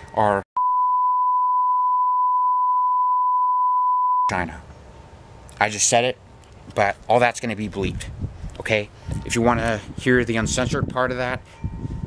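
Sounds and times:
speech: 0:00.2 - 0:00.4, 0:04.3 - 0:04.6, 0:05.6 - 0:11.4
censor bleep tone: 0:00.6 - 0:04.3.

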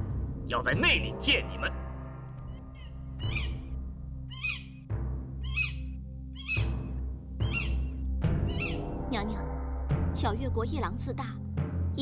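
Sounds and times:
low music drone: 0:00.0 - 0:10.7
bird of prey crying: 0:02.5 - 0:03.7, 0:04.3 - 0:04.8, 0:05.4 - 0:06.8, 0:07.4 - 0:08.9.

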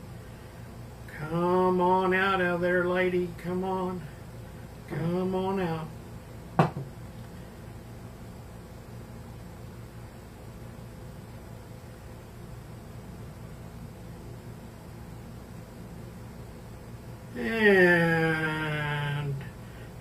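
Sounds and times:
faint hum: 0:00.0 - 0:20.0.

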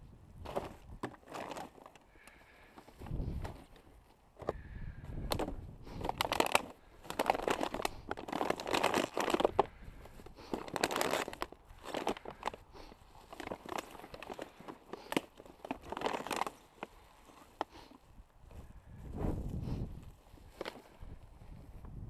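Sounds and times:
plastic bag crinkling: 0:00.5 - 0:04.1, 0:05.3 - 0:18.0.

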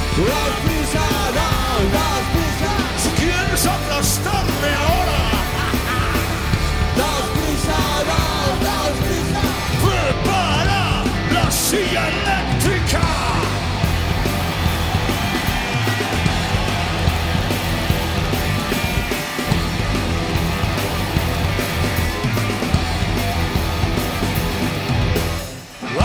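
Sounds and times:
electric guitar: 0:00.0 - 0:26.0
live rock band playing: 0:00.0 - 0:26.0.

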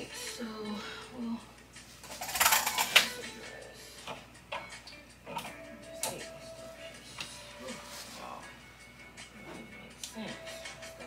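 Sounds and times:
background music with vocals: 0:00.0 - 0:11.0.

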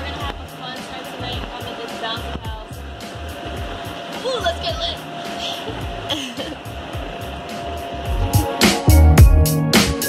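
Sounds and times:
background music with even beat: 0:00.0 - 0:10.0
inflation blower whirring: 0:00.0 - 0:10.0.

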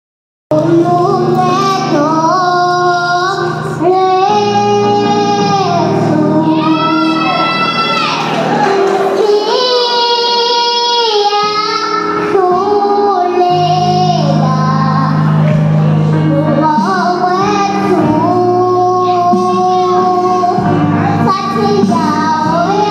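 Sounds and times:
girl singing gospel song: 0:00.5 - 0:22.9.

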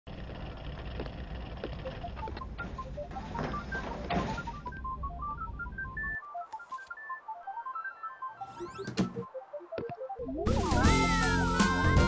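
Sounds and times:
electronic beeping melody: 0:01.8 - 0:12.0.

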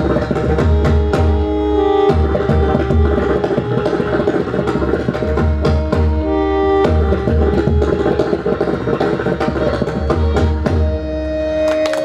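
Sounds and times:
harmonium held melody: 0:00.0 - 0:12.0.

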